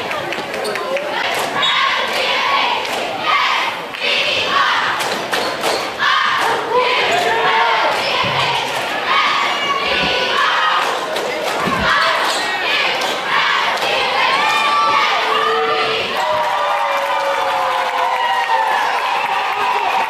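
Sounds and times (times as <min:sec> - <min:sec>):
people shouting and chatting: 0:00.0 - 0:20.0.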